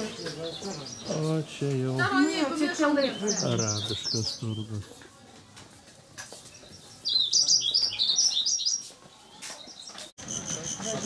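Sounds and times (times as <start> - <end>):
high bird-like chirps: 6.5 - 10.0.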